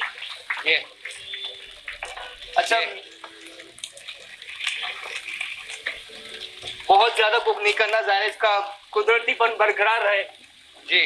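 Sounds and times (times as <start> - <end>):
chicken sizzling in hot oil: 0.0 - 11.0.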